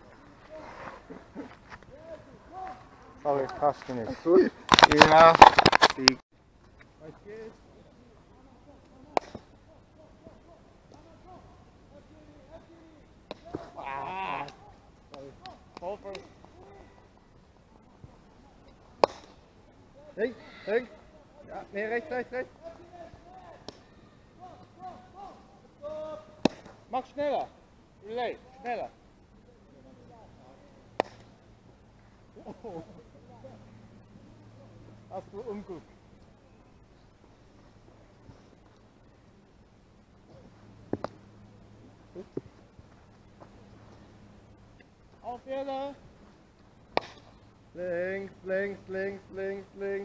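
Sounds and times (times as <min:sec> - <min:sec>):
voices calling out: 0:00.0 - 0:06.2, 0:06.8 - 0:50.0
baseball popping into leather glove: 0:09.1 - 0:09.5, 0:26.4 - 0:26.8, 0:31.0 - 0:31.3, 0:40.9 - 0:41.2, 0:46.9 - 0:47.4
bat hitting ball crack: 0:19.0 - 0:19.4, 0:26.3 - 0:26.8, 0:31.0 - 0:31.3, 0:46.9 - 0:47.4.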